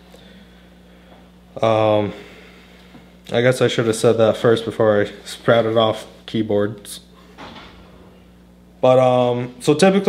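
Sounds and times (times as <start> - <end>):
man talking: 1.6 - 2.3, 3.3 - 7.2, 8.8 - 10.0.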